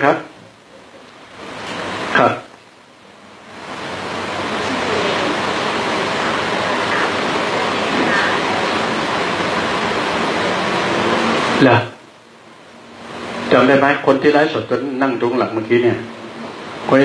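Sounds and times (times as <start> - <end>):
steady rushing hiss: 0.0 - 17.0
faint voice: 4.4 - 9.0.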